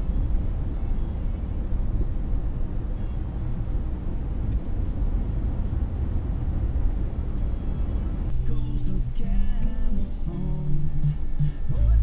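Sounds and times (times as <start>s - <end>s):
car cabin road rumble: 0.0s - 12.0s
music with held notes: 8.5s - 12.0s.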